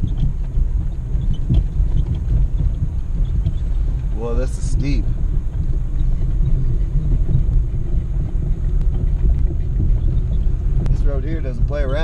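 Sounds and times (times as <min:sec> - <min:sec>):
engine and tyres rumbling on rock: 0:00.0 - 0:12.0.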